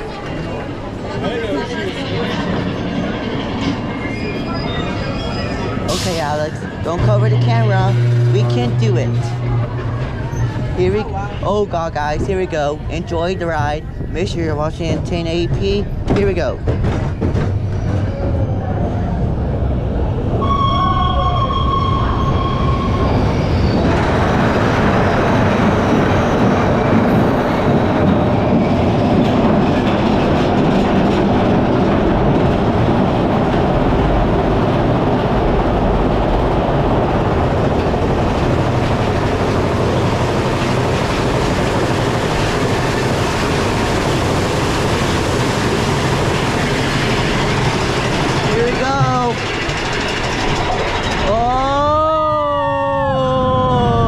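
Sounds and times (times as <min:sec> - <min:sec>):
roller coaster train on track: 0:00.0 - 0:54.0.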